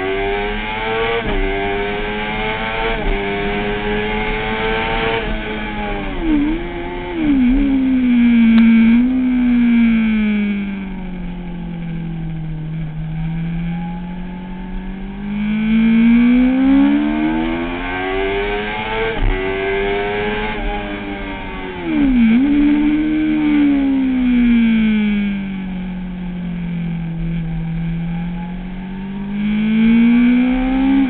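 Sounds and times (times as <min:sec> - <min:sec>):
motorcycle engine accelerating: 0:00.0 - 0:31.0.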